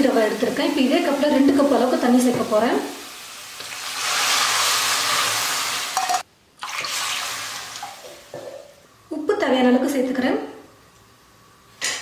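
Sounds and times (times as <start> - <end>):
water poured into hot pan hissing: 2.9 - 8.3.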